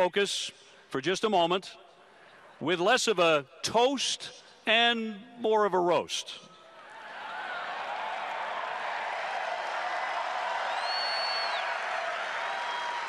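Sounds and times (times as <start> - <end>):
stadium crowd cheering and applauding: 6.7 - 13.0
high whistle: 10.7 - 11.7.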